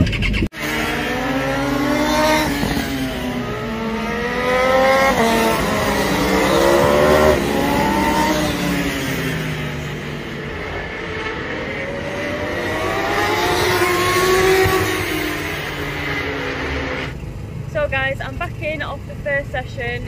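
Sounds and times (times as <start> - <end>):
motorcycles accelerating: 0.0 - 20.0.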